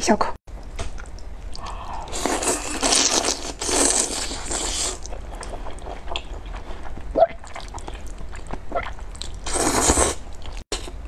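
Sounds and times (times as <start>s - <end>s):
noodles being slurped: 2.1s - 7.8s, 9.2s - 10.6s.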